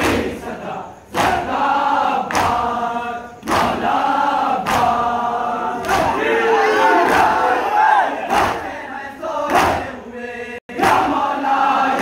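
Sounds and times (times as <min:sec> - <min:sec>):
hands slapping chests in unison: 0:00.0 - 0:00.4, 0:01.1 - 0:02.8, 0:03.4 - 0:06.2, 0:08.3 - 0:08.7, 0:09.4 - 0:10.0, 0:10.7 - 0:12.0
crowd of men chanting: 0:00.0 - 0:12.0.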